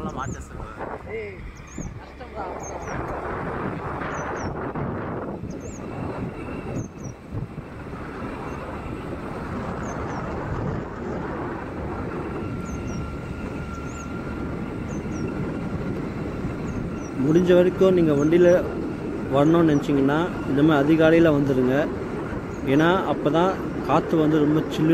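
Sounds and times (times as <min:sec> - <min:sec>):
vehicle road and wind noise: 0:00.0 - 0:24.9.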